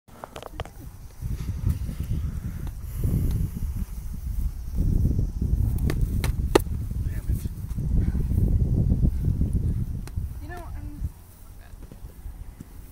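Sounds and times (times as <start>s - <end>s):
wind buffeting microphone: 0.1s - 12.9s.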